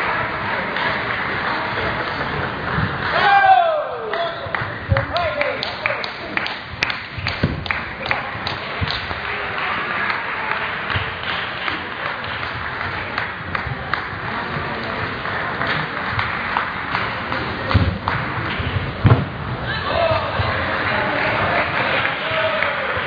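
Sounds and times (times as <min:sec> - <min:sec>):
murmur of sports hall: 0:00.0 - 0:23.0
heavy thumps: 0:07.1 - 0:07.9, 0:17.3 - 0:19.7.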